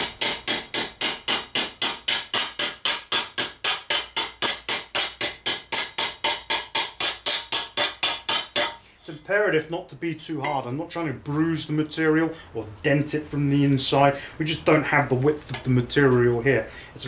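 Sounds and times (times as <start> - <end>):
hammer tapping on sheet steel: 0.0 - 8.8.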